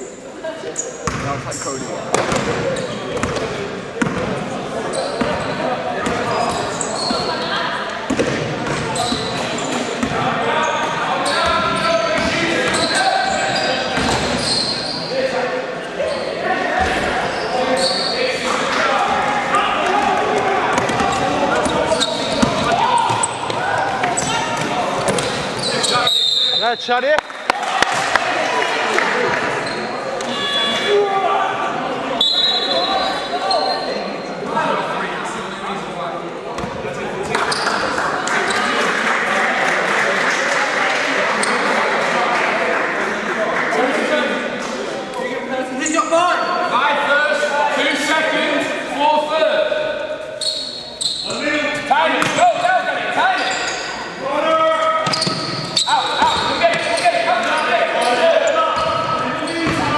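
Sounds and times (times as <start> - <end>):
people shouting in a hall: 10.2 - 26.6, 27.4 - 34.8, 45.8 - 59.9.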